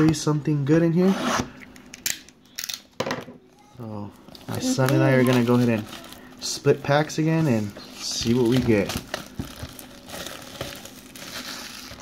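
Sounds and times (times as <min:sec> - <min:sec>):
plastic wrap tearing: 0:04.4 - 0:06.5, 0:07.2 - 0:12.0.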